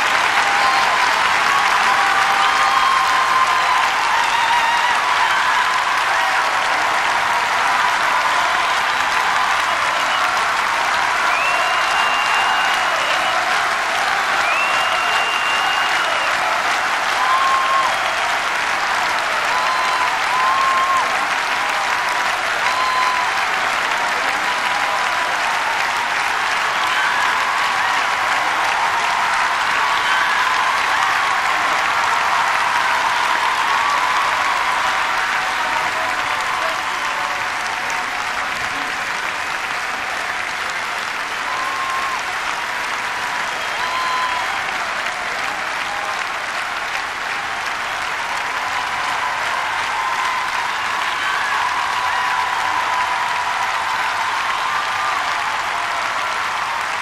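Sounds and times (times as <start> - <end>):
audience applauding: 0.0 - 57.0
short calls from audience: 0.0 - 57.0.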